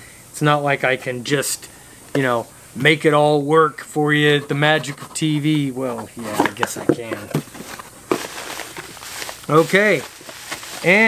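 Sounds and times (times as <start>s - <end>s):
bubble wrap and cardboard crackling: 6.2s - 11.0s.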